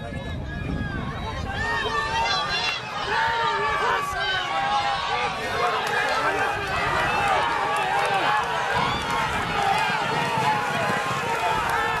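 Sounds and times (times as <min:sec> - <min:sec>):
spectators shouting and cheering: 0:00.0 - 0:12.0
horses galloping on dirt: 0:01.3 - 0:12.0.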